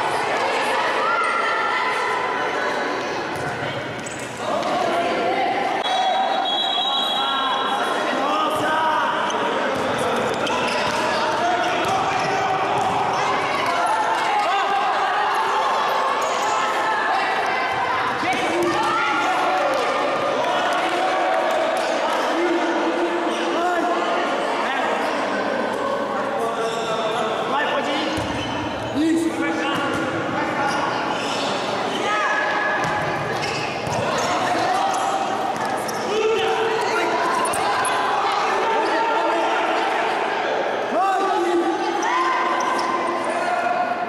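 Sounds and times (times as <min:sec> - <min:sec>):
voices shouting echoing: 0:00.0 - 0:44.0.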